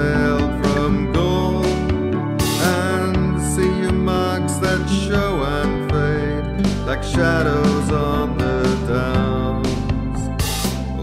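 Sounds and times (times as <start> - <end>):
nylon-string guitar chords: 0.0 - 11.0
person singing: 0.0 - 11.0.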